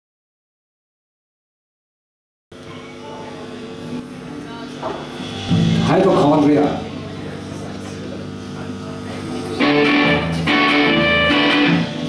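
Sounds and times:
voices in room: 2.5 - 12.0
electric guitar and bass notes: 5.1 - 12.0
rock band playing: 5.2 - 7.6, 9.4 - 12.0.

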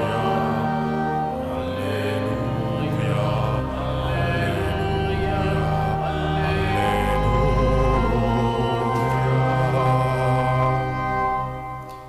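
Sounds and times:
pipe organ sustained chords: 0.0 - 12.0.

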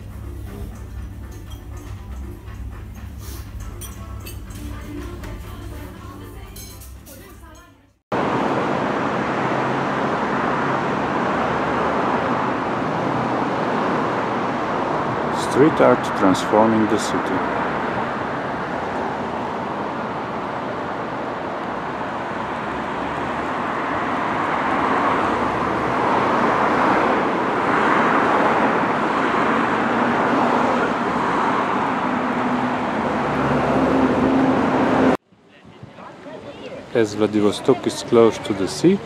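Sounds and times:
city street traffic: 0.0 - 39.0.

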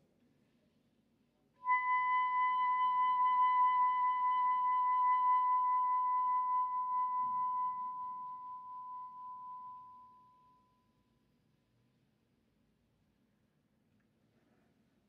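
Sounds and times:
soprano saxophone long high note: 1.6 - 10.0.

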